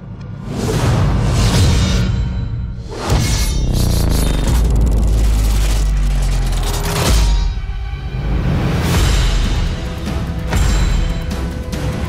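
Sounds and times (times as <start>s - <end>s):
dramatic orchestral music: 6.0s - 12.0s.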